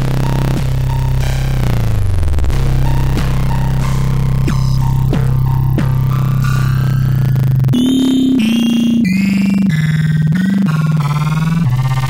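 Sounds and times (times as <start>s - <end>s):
buzzy synthesized tone: 0.0s - 12.0s.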